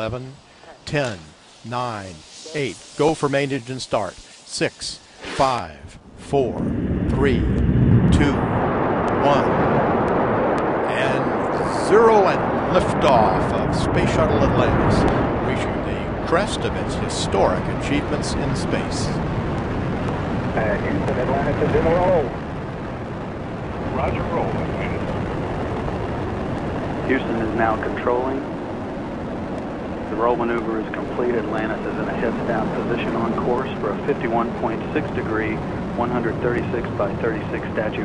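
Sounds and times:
rocket engines roaring at liftoff: 0.0s - 38.0s.

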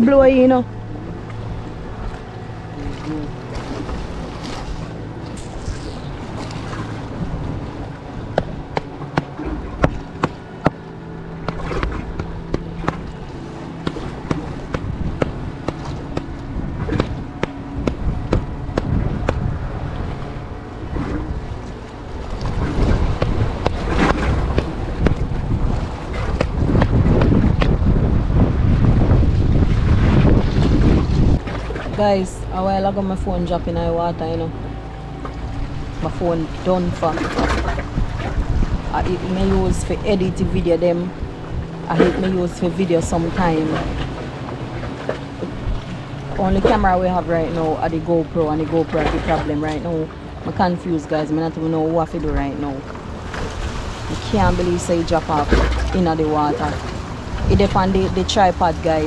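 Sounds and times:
sea waves washing: 0.0s - 59.0s
wind buffeting microphone: 0.0s - 59.0s.

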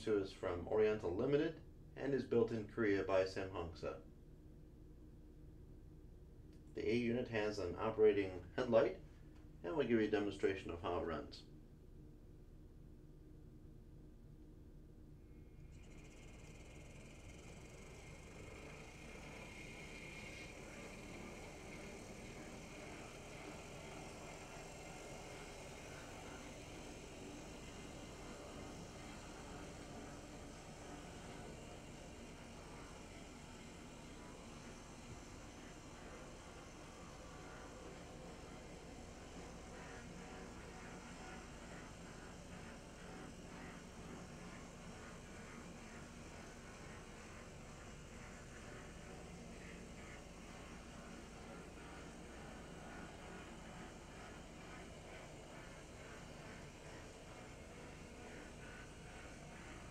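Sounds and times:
model train motor humming: 15.5s - 59.9s.

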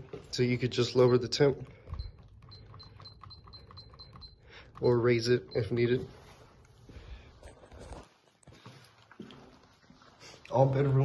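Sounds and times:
thermostat short high beeps: 2.0s - 4.5s.

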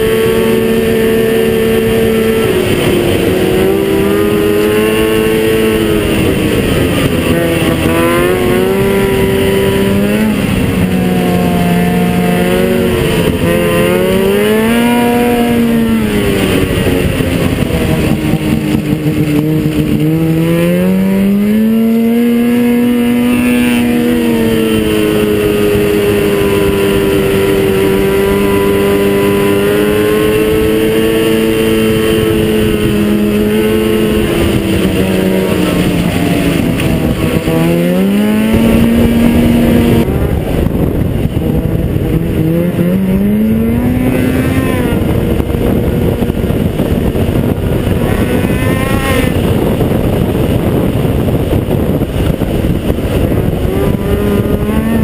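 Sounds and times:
snowmobile engine revving: 0.0s - 55.0s.

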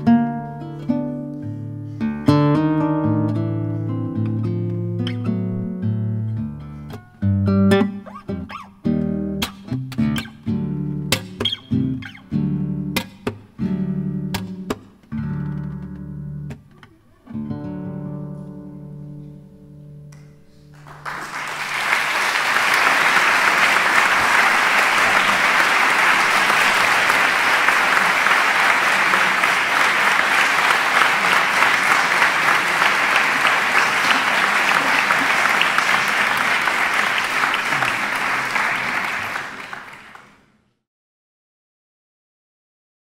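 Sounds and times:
audience applauding: 20.7s - 40.5s.

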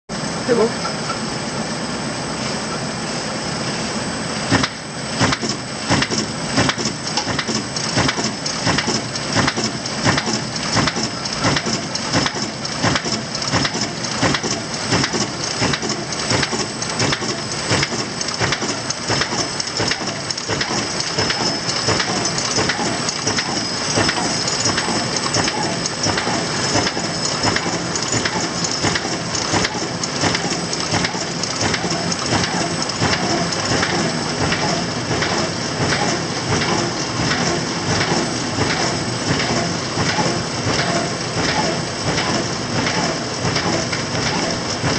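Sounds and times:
machine hiss and whine: 0.2s - 44.9s.

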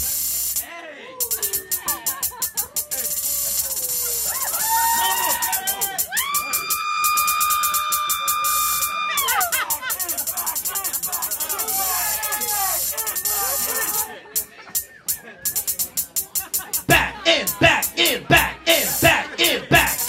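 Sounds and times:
ticking hi-hat loop: 0.0s - 20.0s
synthesizer pitch-bent notes: 10.5s - 20.0s.

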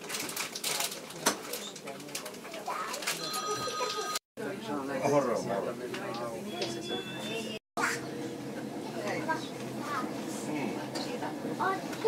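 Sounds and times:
indistinct passenger voices: 0.6s - 12.0s
electronic beep tone: 6.5s - 7.6s.

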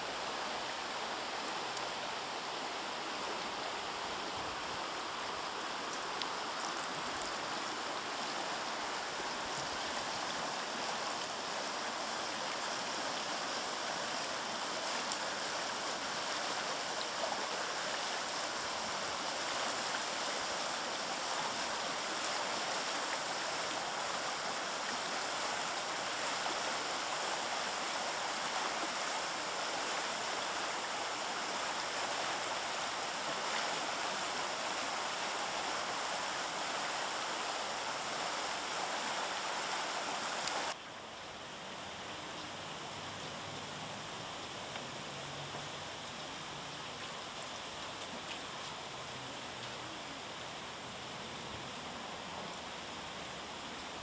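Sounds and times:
river rushing over rocks: 0.0s - 54.0s
steady hiss: 0.0s - 54.0s.

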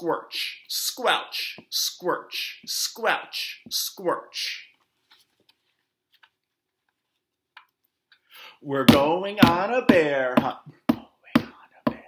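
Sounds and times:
book pages turning: 4.8s - 7.9s.

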